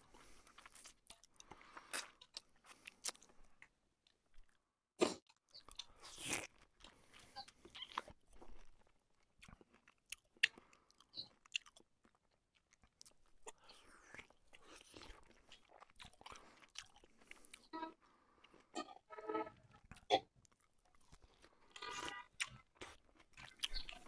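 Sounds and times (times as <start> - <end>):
person chewing food: 0.0 - 24.0.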